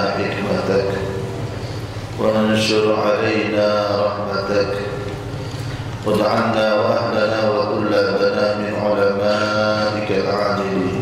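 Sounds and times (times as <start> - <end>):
man chanting a prayer: 0.0 - 1.3, 2.2 - 5.1, 6.0 - 11.0.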